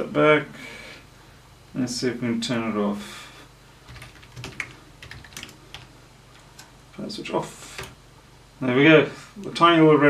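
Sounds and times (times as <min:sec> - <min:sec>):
computer keyboard keystrokes: 0:03.9 - 0:06.7, 0:07.8 - 0:08.0.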